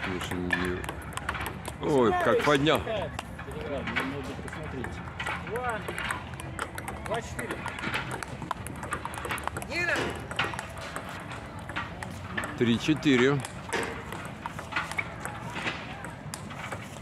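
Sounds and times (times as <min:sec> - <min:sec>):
table tennis ball knocks: 0:05.8 - 0:16.9.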